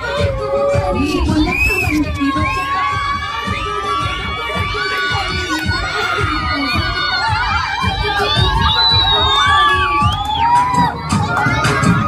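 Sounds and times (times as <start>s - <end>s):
low thumping beat: 0.0s - 11.3s
children shouting and cheering: 0.0s - 12.0s.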